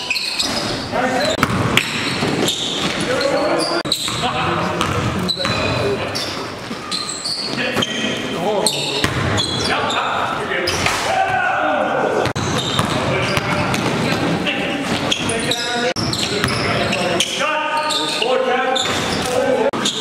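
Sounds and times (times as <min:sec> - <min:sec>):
basketball bouncing on court floor: 0:01.3 - 0:03.0, 0:03.9 - 0:06.0, 0:09.0 - 0:09.7, 0:12.2 - 0:14.3, 0:16.0 - 0:17.0.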